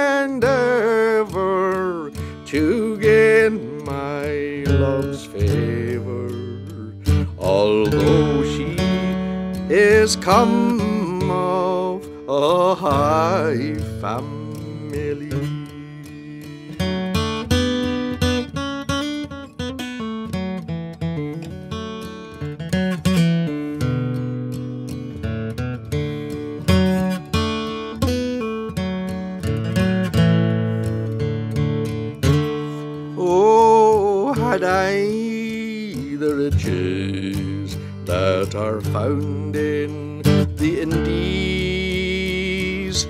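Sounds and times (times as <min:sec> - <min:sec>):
acoustic guitar picking: 0:00.0 - 0:43.0.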